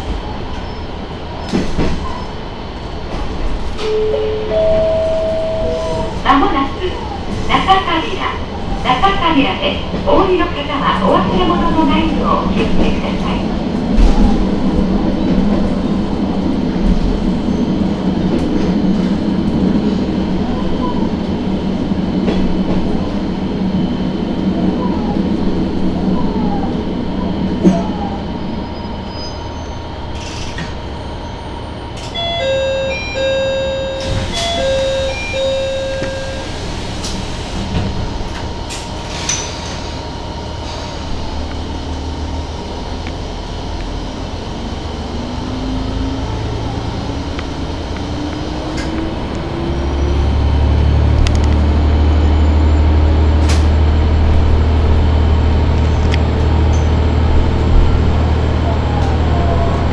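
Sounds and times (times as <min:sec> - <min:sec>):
diesel railcar running: 0:00.0 - 0:59.9
electronic chime: 0:03.9 - 0:06.1.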